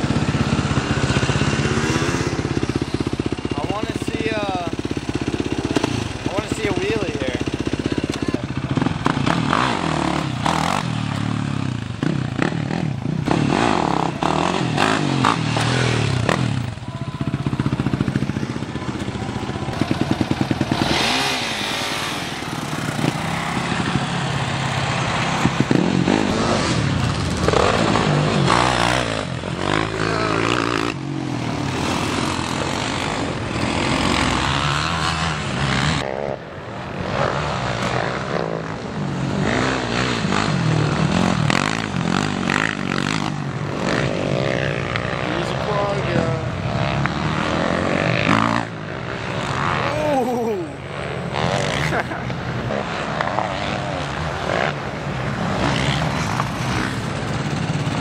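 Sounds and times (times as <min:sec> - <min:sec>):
motorbike engines revving: 0:00.0 - 0:58.0
person talking: 0:49.8 - 0:50.8.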